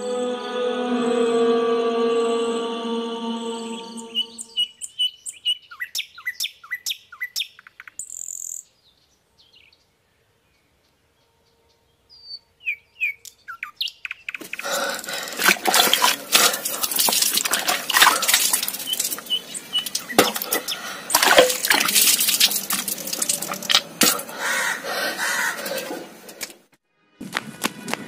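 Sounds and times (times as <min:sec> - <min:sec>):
ambient music drone: 0:00.0 - 0:04.7
small birds chirping: 0:03.6 - 0:10.9, 0:12.1 - 0:15.4, 0:17.5 - 0:21.2.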